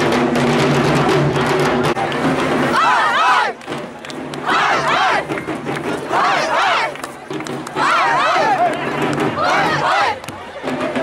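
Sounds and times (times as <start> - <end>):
drums beaten in fast roll: 0.0 - 11.0
crowd cheering: 0.9 - 11.0
long rising and falling shouts: 2.7 - 3.6.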